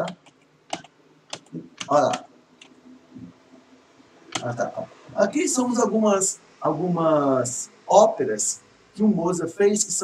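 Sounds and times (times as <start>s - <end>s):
computer keyboard key clicks: 0.0s - 2.7s.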